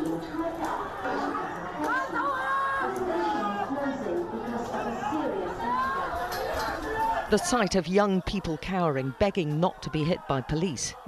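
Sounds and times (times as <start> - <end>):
people shouting: 0.4 - 11.0.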